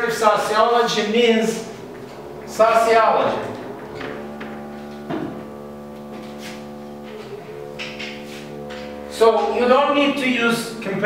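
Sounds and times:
steady hum of held tones: 0:00.0 - 0:11.0.

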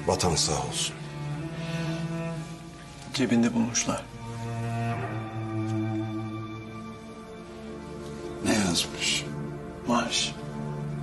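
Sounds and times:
low bowed strings: 0:00.0 - 0:11.0.

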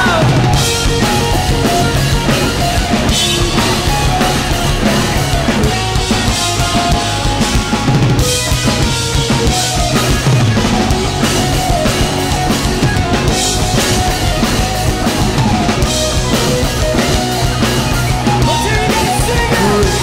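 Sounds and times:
bass guitar: 0:00.0 - 0:20.0
drum kit beat: 0:00.0 - 0:20.0
electric guitars: 0:00.0 - 0:20.0.

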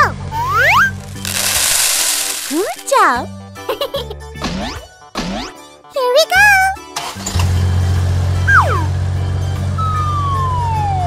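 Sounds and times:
children's background music: 0:00.0 - 0:07.2.

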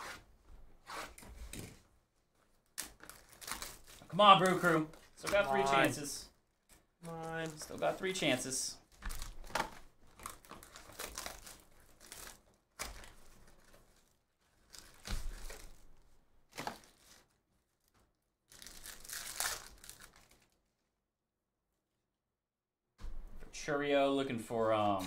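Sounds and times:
cardboard and wrappers ripping: 0:02.8 - 0:06.1, 0:09.1 - 0:17.3, 0:18.5 - 0:20.6.

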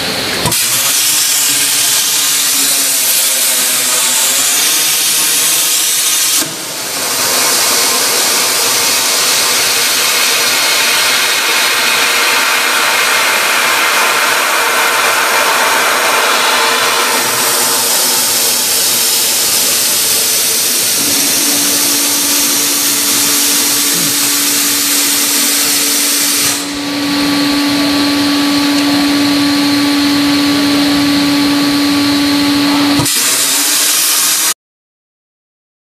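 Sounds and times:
plasma torch hissing: 0:00.4 - 0:26.9, 0:33.0 - 0:34.5
steady low hum: 0:01.3 - 0:33.0.

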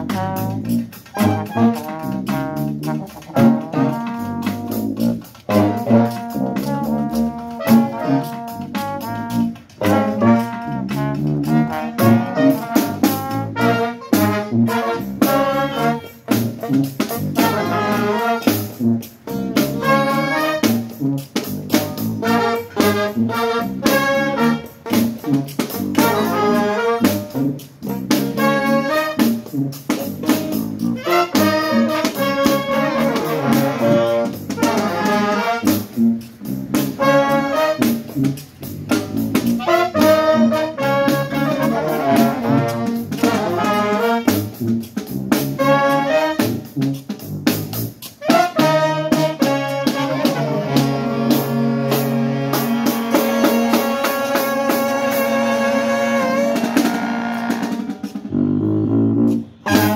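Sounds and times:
sousaphone bass line: 0:00.0 - 0:48.2, 0:50.1 - 0:59.9
saxophones trombone and trumpet: 0:00.0 - 0:59.9.

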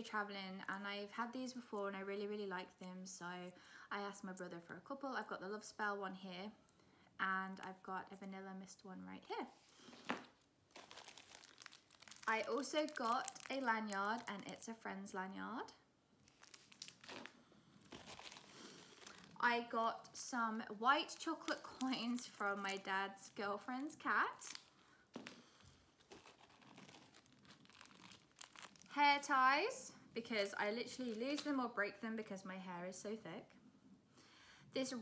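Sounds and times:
plastic packet crinkling: 0:09.9 - 0:14.8, 0:16.2 - 0:19.5, 0:20.9 - 0:29.0.

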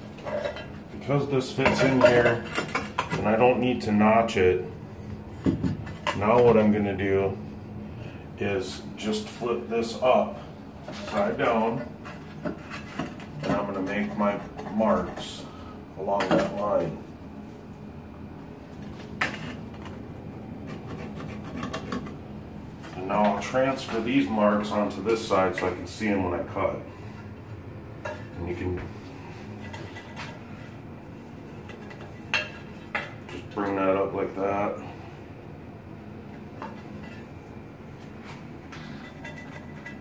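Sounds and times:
low steady room hum: 0:00.0 - 0:40.0.

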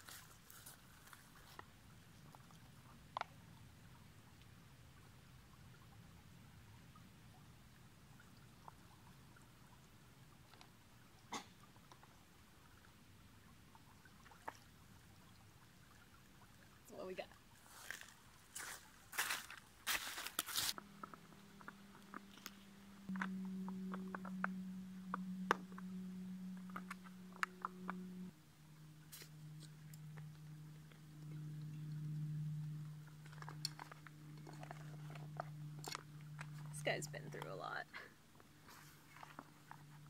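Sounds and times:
steady low hum: 0:00.0 - 0:40.0.

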